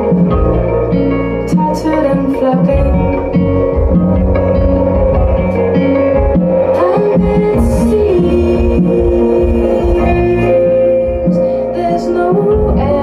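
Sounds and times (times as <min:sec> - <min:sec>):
heavy low bass line: 0:00.0 - 0:13.0
picked electric guitars: 0:00.0 - 0:13.0.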